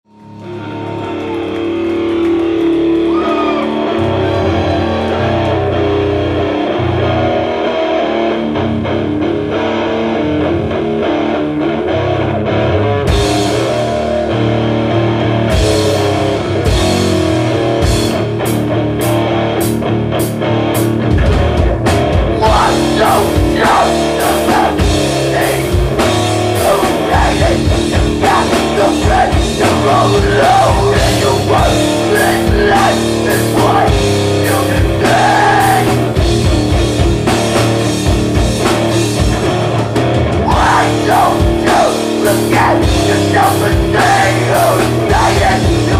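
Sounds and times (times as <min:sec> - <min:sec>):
distorted electric guitars: 0:00.1 - 0:45.9
drumming: 0:15.6 - 0:18.6, 0:21.1 - 0:45.9.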